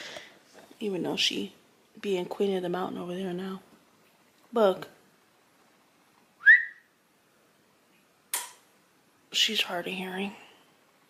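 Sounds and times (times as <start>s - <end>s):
person whistling rising pitch: 6.4s - 6.9s.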